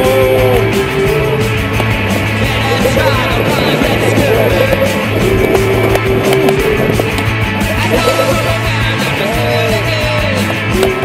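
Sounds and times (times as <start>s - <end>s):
rock music: 0.0s - 11.0s
skateboard wheels rolling on concrete: 0.0s - 11.0s.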